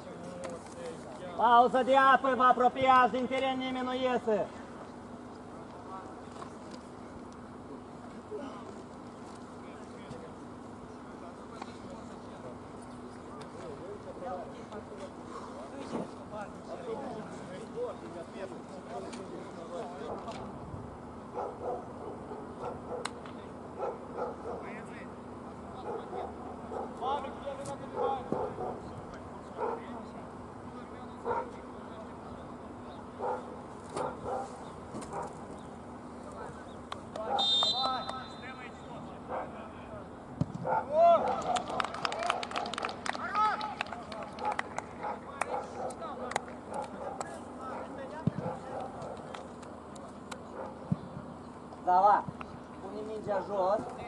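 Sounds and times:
referee's whistle blast: 0:37.4 - 0:38.6
players cheering: 0:40.9 - 0:44.8.

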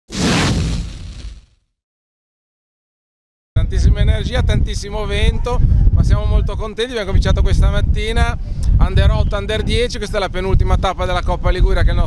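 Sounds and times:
whoosh with low boom: 0:00.1 - 0:01.5.

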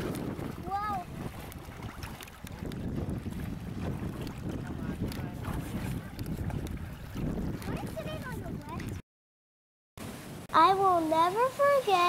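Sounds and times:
water washing over stones: 0:00.0 - 0:08.9, 0:10.0 - 0:12.0
wind buffeting microphone: 0:00.0 - 0:09.0.

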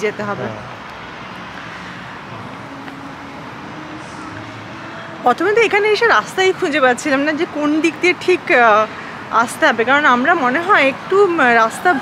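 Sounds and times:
road traffic hum: 0:00.0 - 0:12.0.

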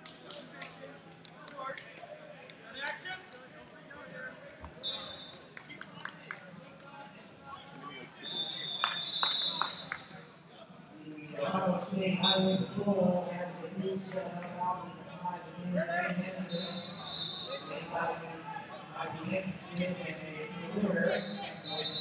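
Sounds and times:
whistle blast: 0:08.2 - 0:10.0, 0:16.5 - 0:17.7, 0:21.1 - 0:22.0.

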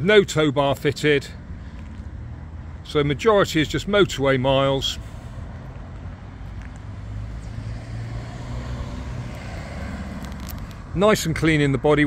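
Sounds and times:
low rumble of motor vehicles: 0:00.0 - 0:12.0.

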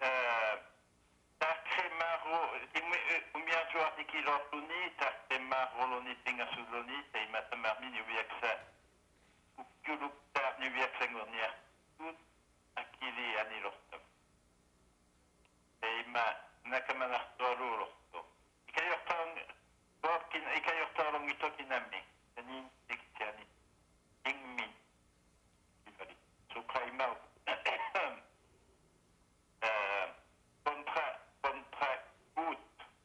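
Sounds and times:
voice over a telephone line: 0:00.0 - 0:00.8, 0:01.4 - 0:08.8, 0:09.6 - 0:14.1, 0:15.8 - 0:23.6, 0:24.2 - 0:24.9, 0:25.8 - 0:28.4, 0:29.6 - 0:33.0.

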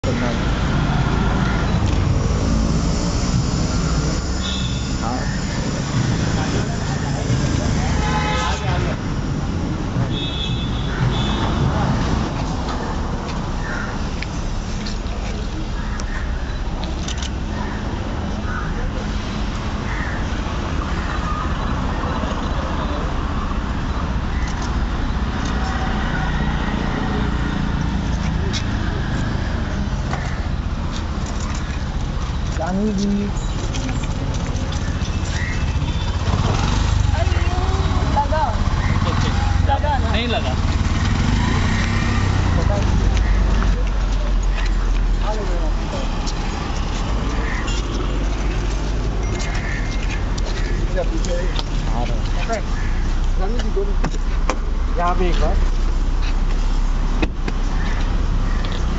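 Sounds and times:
indistinct voices: 0:00.0 - 0:10.1, 0:10.9 - 0:58.9
road traffic rumble: 0:00.0 - 0:58.9.

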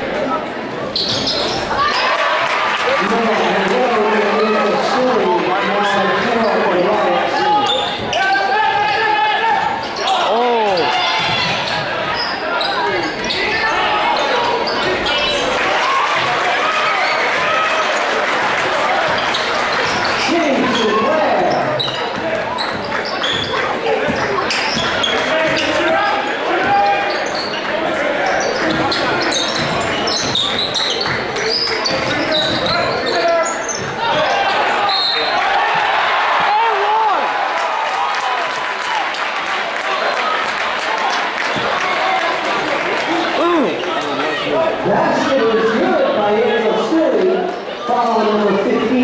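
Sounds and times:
crowd voices and shouts: 0:00.0 - 0:49.0.

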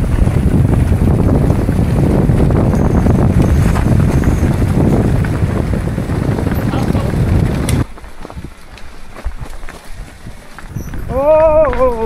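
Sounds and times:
bike rattling over gravel: 0:00.0 - 0:12.0
wind buffeting microphone: 0:00.0 - 0:12.0.

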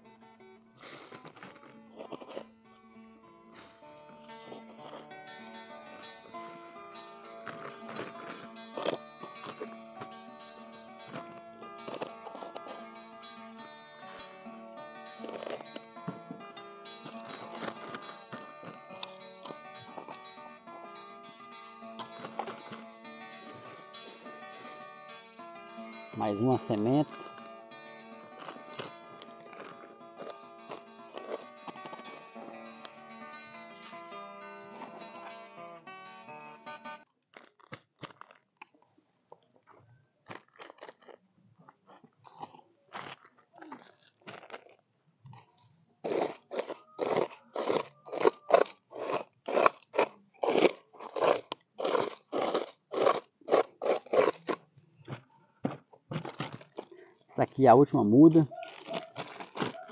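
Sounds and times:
guitar music: 0:00.0 - 0:37.0
soil crunching in plastic bag: 0:58.2 - 0:59.9.

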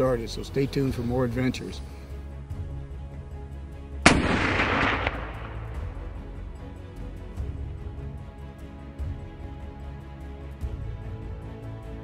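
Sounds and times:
rifle shot: 0:04.0 - 0:06.0
smaller crack: 0:04.1 - 0:05.9.

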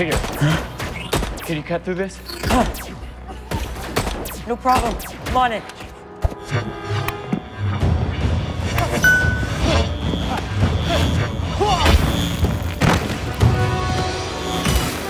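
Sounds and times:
dramatic film score music: 0:00.0 - 0:15.0.

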